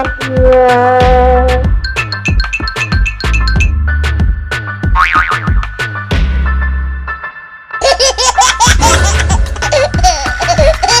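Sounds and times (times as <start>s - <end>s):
music: 0.0s - 11.0s
high-pitched laughter: 7.8s - 11.0s.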